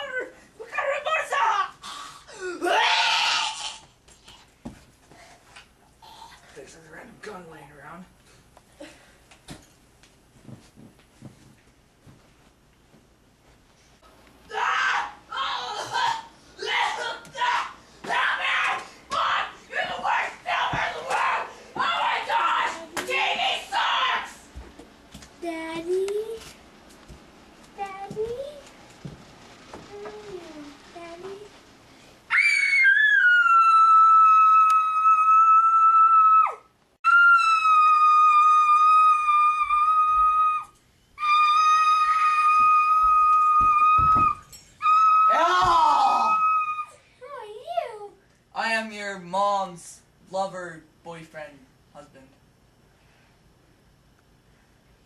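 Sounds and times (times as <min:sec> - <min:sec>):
young voices yelling: 0:02.6 - 0:03.8, 0:14.5 - 0:24.5, 0:32.3 - 0:47.0
person shouting: 0:14.5 - 0:24.4, 0:44.9 - 0:46.9.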